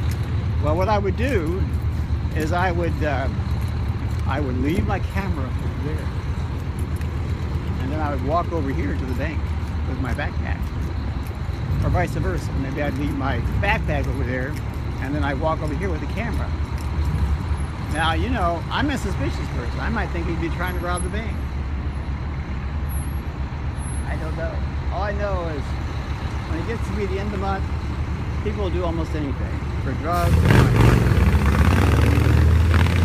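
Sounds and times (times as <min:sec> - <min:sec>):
heavy vehicle engine running: 0:00.0 - 0:33.0
passing cars rumbling: 0:00.0 - 0:33.0.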